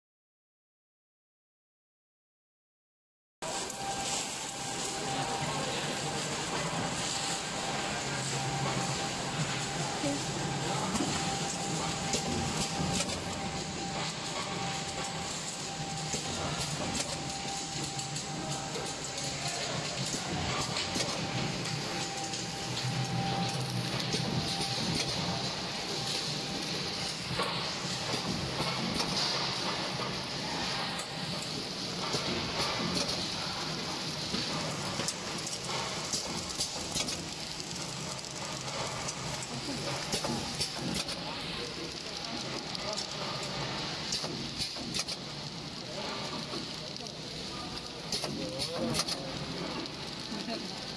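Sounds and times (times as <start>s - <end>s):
wrapping machine clattering: 3.5s - 50.9s.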